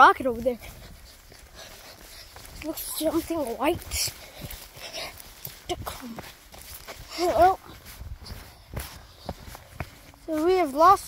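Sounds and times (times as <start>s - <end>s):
footsteps through grass: 0.0s - 11.0s.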